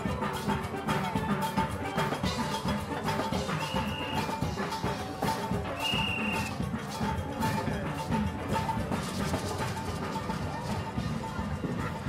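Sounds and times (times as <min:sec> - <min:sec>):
steelband music with percussion: 0:00.0 - 0:12.0.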